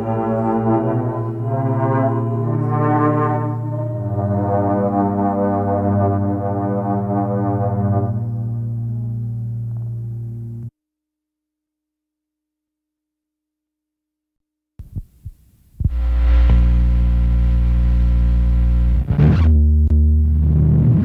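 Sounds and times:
distorted electric guitar and bass: 7.8s - 10.7s, 15.8s - 21.0s
quiet guitar notes: 8.4s - 10.7s.

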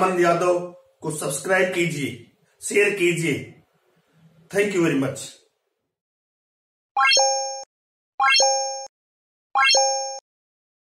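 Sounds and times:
short chime sound effects: 7.0s - 8.9s, 9.6s - 10.2s.

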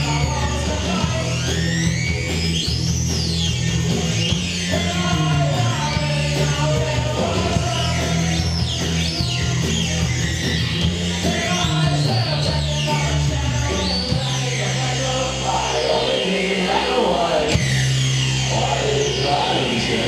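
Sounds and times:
electric guitar: 0.0s - 20.0s
live rock band playing: 0.0s - 20.0s
steady bass line: 0.0s - 20.0s.

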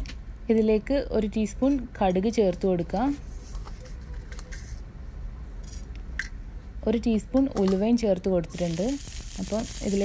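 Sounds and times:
seeds sizzling in hot oil: 8.5s - 10.0s.

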